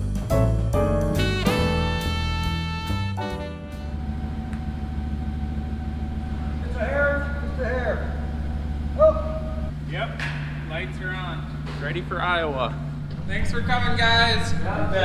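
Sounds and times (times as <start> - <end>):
music track: 0.2 - 4.7
truck engine idling: 1.3 - 15.0
men's voices: 6.3 - 15.0.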